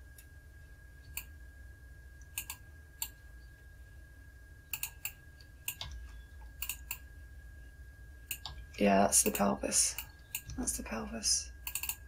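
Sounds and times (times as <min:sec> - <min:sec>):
faint high-pitched whine: 0:00.0 - 0:12.0
computer mouse clicking: 0:02.4 - 0:03.2, 0:04.7 - 0:06.0, 0:06.6 - 0:07.0, 0:08.3 - 0:08.6, 0:09.2 - 0:10.6, 0:11.6 - 0:12.0.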